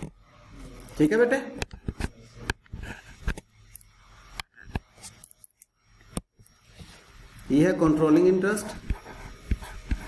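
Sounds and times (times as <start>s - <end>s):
stylus tapping tablet screen: 8.8s - 10.0s.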